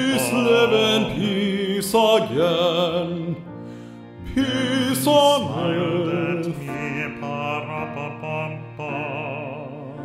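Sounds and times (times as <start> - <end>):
man singing with vibrato: 0.0 - 3.5, 4.2 - 10.0
piano accompaniment: 0.0 - 10.0.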